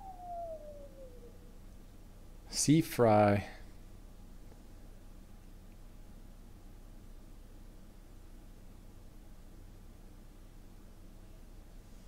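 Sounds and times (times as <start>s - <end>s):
man whistling downward slide: 0.0s - 1.5s.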